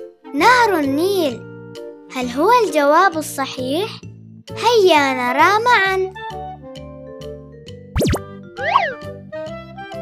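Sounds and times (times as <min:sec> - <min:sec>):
light children's music: 0:00.0 - 0:10.0
rising and falling tone: 0:08.0 - 0:09.0
swooping pitch sound effect: 0:08.0 - 0:09.0.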